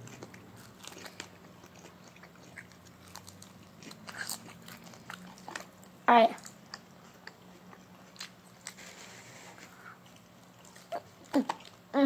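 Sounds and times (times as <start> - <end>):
child chewing food: 0.0 - 12.0.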